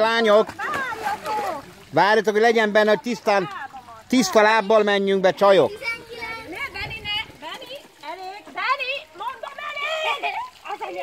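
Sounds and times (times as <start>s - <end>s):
children chattering and calling out: 0.5s - 1.9s, 3.1s - 11.0s.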